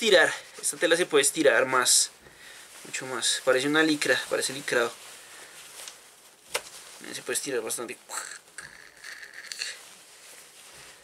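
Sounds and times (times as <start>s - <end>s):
fabric rustling: 0.0s - 11.0s.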